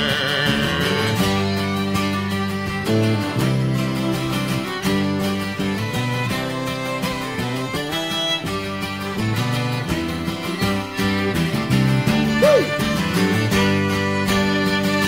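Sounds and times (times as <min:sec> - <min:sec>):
acoustic guitar playing tune: 0:00.0 - 0:15.0
folk instruments playing: 0:00.0 - 0:15.0.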